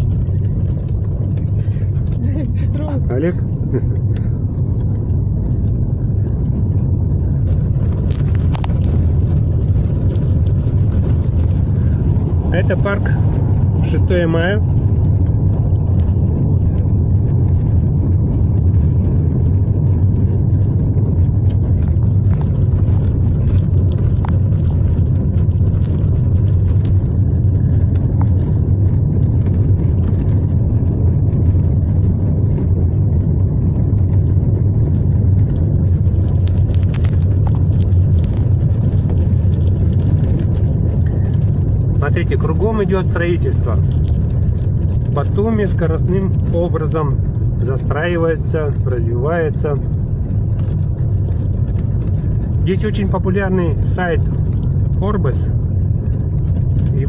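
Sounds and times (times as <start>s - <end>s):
car engine and tyre noise: 0.0s - 57.0s.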